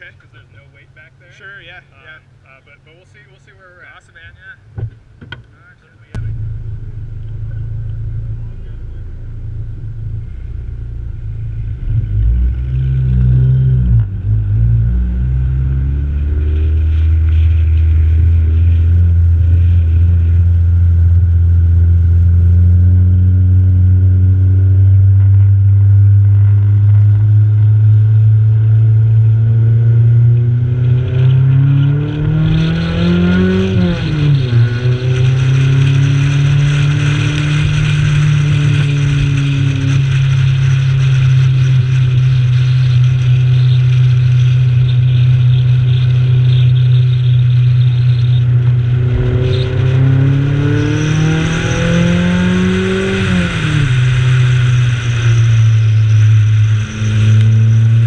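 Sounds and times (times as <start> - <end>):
wind and road noise: 0.0 - 58.0
car engine revving: 5.6 - 58.0.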